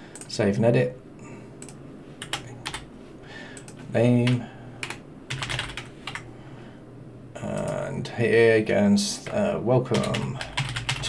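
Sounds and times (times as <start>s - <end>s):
keyboard and mouse clicks: 1.6s - 2.8s.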